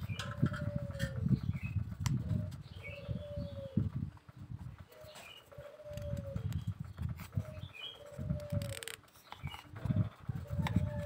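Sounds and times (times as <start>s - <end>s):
doves cooing: 0.0s - 11.0s
small birds chirping: 0.0s - 11.0s.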